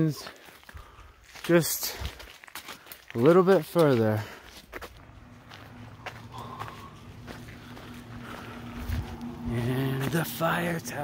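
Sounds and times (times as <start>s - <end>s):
footsteps crunching on gravel: 0.0s - 11.0s
faint low hum: 5.0s - 11.0s.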